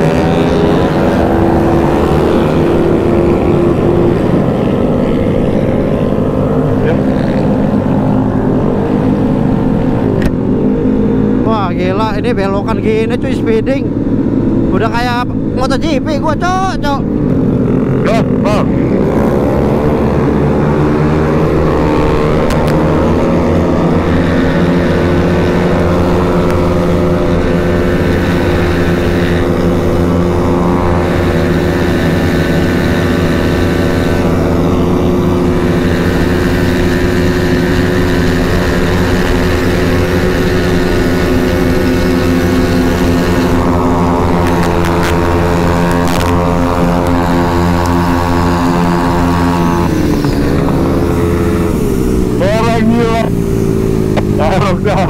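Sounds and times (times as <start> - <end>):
scooter engine at full throttle: 0.0 - 55.0.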